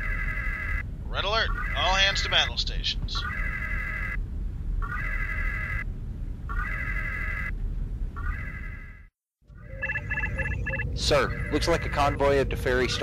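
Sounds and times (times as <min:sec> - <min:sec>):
low rumble: 0:00.0 - 0:13.0
whooping alert klaxon: 0:09.6 - 0:12.2
quick electronic beeps: 0:09.7 - 0:12.0.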